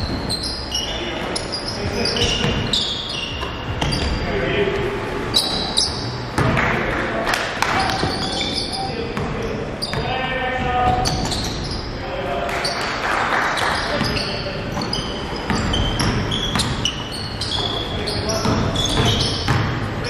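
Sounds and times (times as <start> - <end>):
sneakers squeaking on floor: 0.0 - 20.0
basketball dribbling: 1.8 - 4.2, 7.6 - 11.9, 13.6 - 20.0
echoing players' voices: 3.5 - 15.5.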